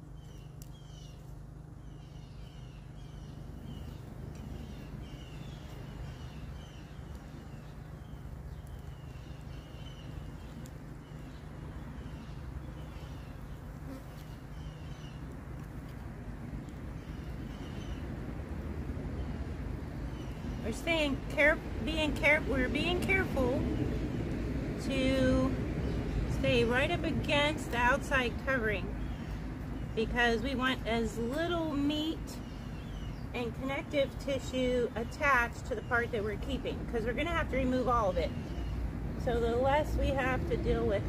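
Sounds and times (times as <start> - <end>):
flies buzzing: 0.0 - 18.6.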